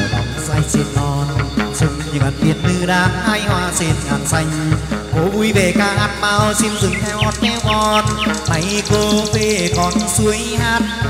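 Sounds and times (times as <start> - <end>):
steady drum beat: 0.0 - 11.0
short high chirps: 6.6 - 10.2.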